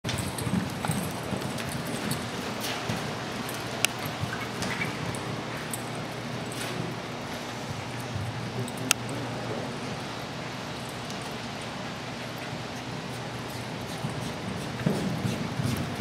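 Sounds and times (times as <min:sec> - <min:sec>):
horse hoofbeats on soft dirt: 0:00.0 - 0:08.6, 0:12.2 - 0:16.0.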